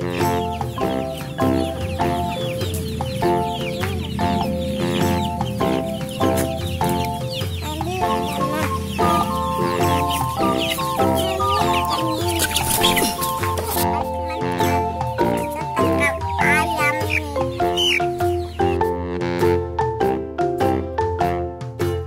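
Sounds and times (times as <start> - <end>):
chicks peeping: 0.0 - 19.2
chickens clucking: 0.0 - 19.6
background music with bass line: 0.0 - 22.0.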